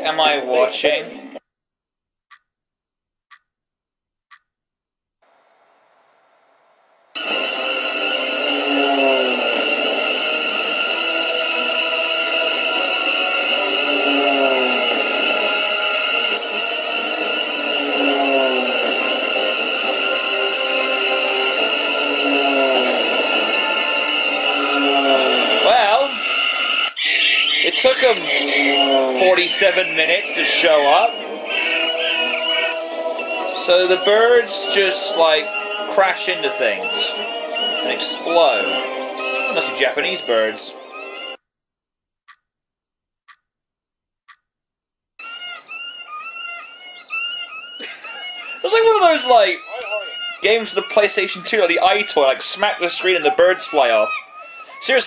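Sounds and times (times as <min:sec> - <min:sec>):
electronic drone: 0:07.2 - 0:41.4, 0:46.4 - 0:55.0
falling cry sound effect: 0:47.7 - 0:51.1.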